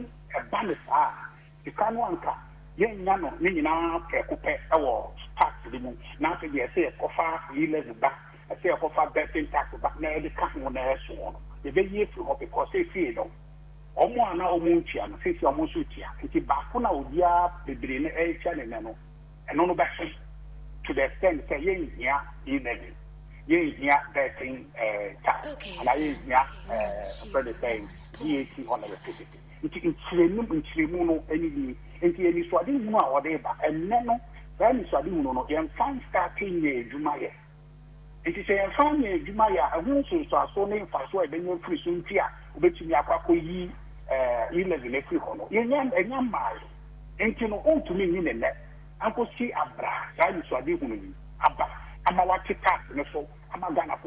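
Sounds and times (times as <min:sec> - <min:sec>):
man talking: 0:00.0 - 0:13.3, 0:14.0 - 0:20.2, 0:20.9 - 0:22.9, 0:23.5 - 0:37.3, 0:38.3 - 0:54.0
steady low hum: 0:00.0 - 0:54.0.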